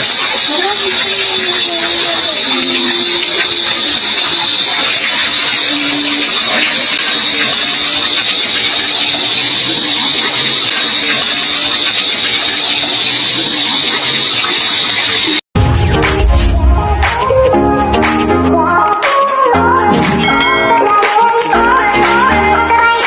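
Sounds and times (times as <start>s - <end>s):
water pouring into basin: 0.0s - 15.4s.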